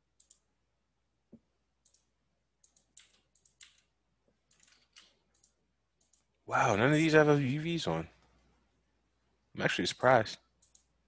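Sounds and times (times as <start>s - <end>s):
computer mouse clicks: 0.1s - 0.5s, 1.3s - 3.9s, 4.5s - 6.4s, 10.6s - 10.9s.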